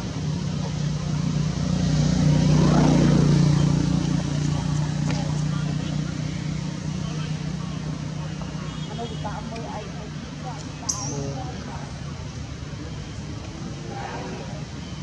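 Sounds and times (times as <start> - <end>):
vehicle engine passing: 0.0 - 8.3.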